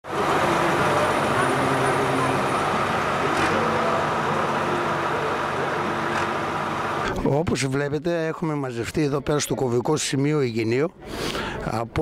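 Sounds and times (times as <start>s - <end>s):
tractor engines idling: 0.0s - 7.2s
crowd of men talking: 0.1s - 12.0s.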